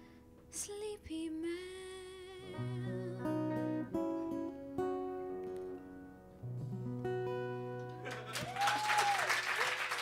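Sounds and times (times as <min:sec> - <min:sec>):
audience applauding: 0:07.9 - 0:10.0
person cheering: 0:08.0 - 0:09.7.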